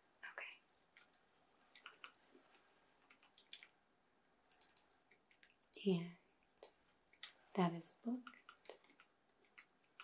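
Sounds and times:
computer keyboard typing clicks: 1.0 - 3.8, 4.5 - 5.9, 6.6 - 7.4, 8.1 - 10.0.

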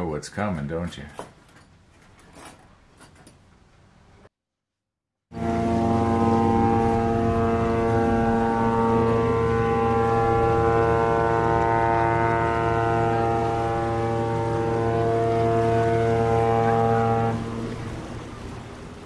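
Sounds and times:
ship's horn blast: 5.3 - 19.0.

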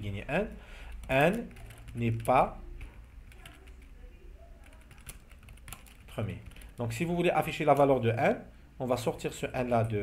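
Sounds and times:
computer keyboard typing: 0.8 - 7.9.

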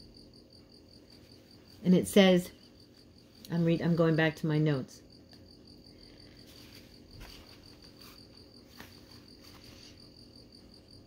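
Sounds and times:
paper notebook being handled: 6.4 - 10.1.

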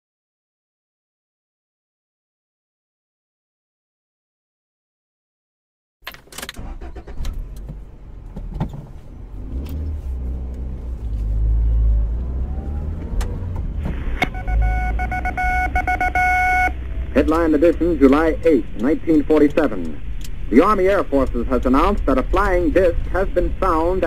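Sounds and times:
car engine rumbling: 6.0 - 24.0
clicks: 12.9 - 23.8
radio steady tone: 13.8 - 24.0.

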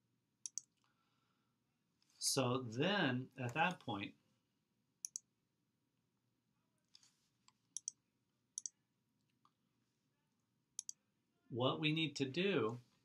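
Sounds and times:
computer mouse clicks: 0.4 - 0.9, 5.0 - 5.3, 6.9 - 8.0, 8.6 - 8.8, 10.8 - 11.0.

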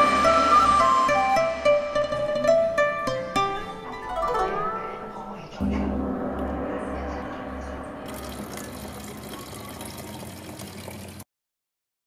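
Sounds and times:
low hum: 5.2 - 10.9
liquid pouring into plastic bucket: 8.1 - 11.2.

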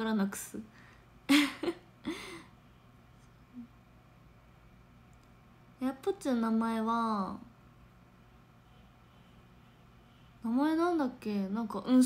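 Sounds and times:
woman breathy laughing exhale: 1.3 - 2.5.

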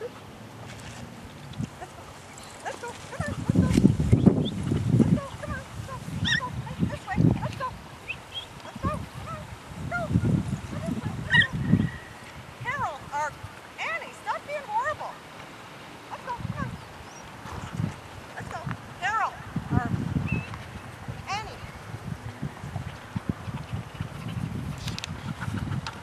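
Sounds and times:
dogs and puppies barking and yelping: 5.1 - 6.8, 8.8 - 12.2.

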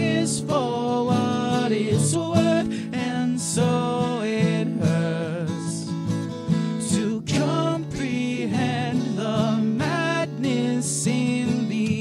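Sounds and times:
person singing with vibrato: 0.0 - 6.0, 6.7 - 12.0
guitar backing: 0.0 - 12.0.

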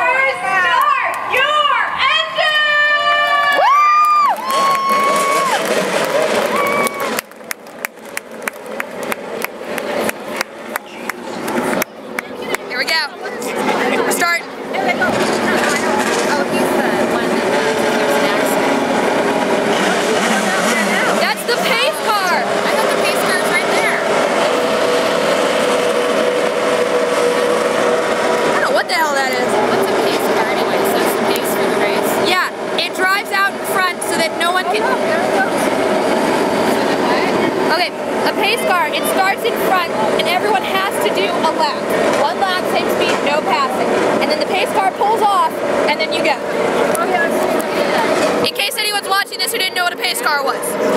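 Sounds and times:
crowd chatter: 0.0 - 50.9
race car engines passing: 0.0 - 50.9.

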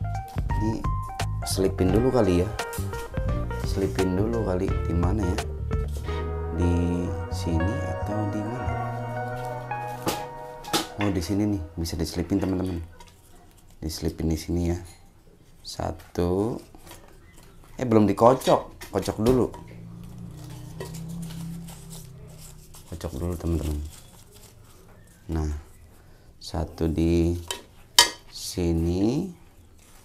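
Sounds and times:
background music with held notes: 0.0 - 12.9, 19.1 - 24.0
low steady hum: 19.0 - 24.4
paper slips rustling: 20.8 - 25.7.

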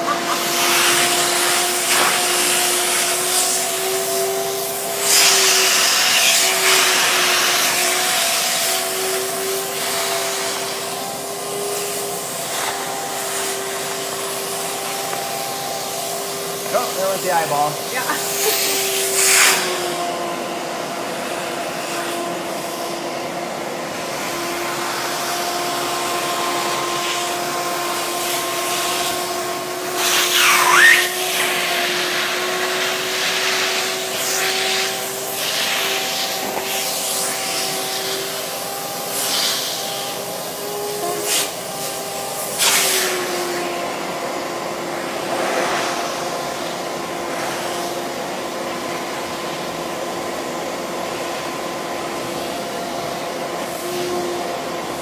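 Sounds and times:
shop vac running with a whine: 0.0 - 55.0
sharp suction whistle: 30.3 - 31.2.

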